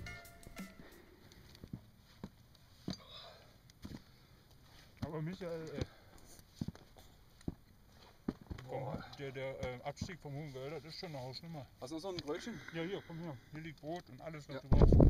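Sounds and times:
man speaking: 8.6s - 14.8s.

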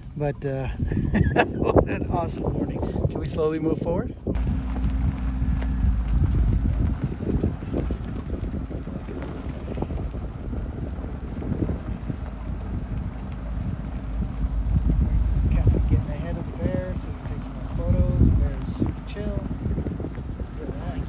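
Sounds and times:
vehicle engine rumble: 0.0s - 21.0s
wind buffeting microphone: 0.0s - 21.0s.

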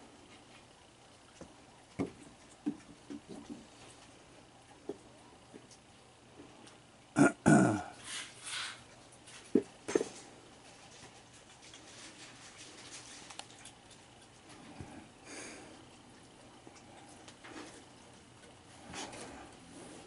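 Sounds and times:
low grunt-like vocal sound: 7.2s - 8.0s.

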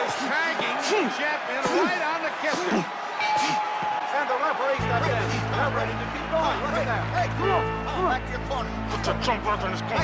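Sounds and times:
crowd yelling: 0.0s - 10.0s.

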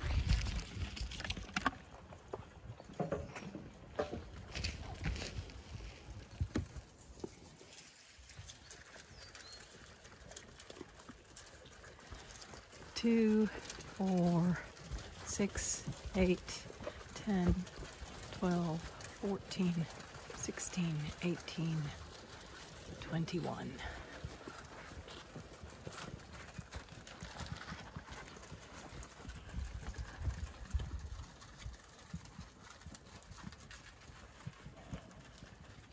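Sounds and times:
sheep crunching and chewing: 0.0s - 35.9s.

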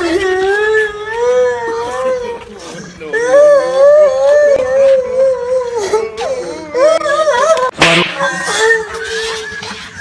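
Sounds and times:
boy crying loudly: 0.0s - 2.4s, 3.1s - 9.6s.

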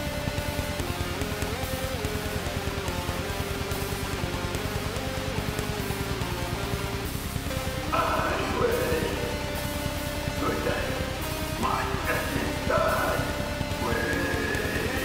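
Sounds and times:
fast kick-drum pulse: 0.0s - 15.0s
guitar and synth melody: 0.0s - 15.0s
harsh vocal: 7.7s - 15.0s.

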